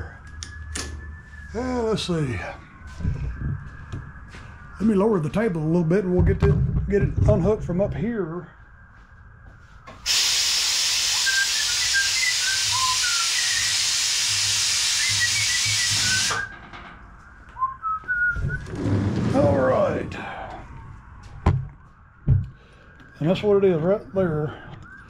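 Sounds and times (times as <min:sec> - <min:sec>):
hiss of escaping air: 0:10.0 - 0:16.5.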